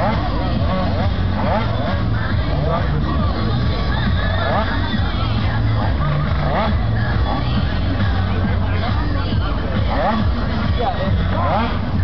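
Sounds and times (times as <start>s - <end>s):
crowd chatter: 0.0s - 12.0s
music: 0.0s - 12.0s
racing scooter engine running: 0.0s - 12.0s.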